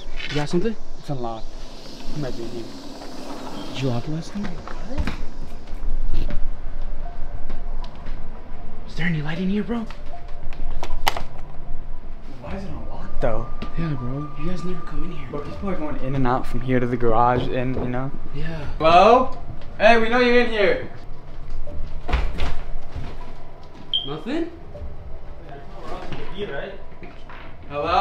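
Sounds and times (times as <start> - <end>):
suspenseful low drone music: 0.0 - 28.0.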